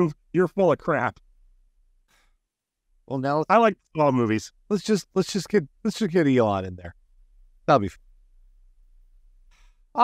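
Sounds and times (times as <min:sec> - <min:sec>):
man speaking: 0:00.0 - 0:01.2, 0:03.0 - 0:07.0, 0:07.6 - 0:08.1
faint short breath: 0:09.5 - 0:09.9.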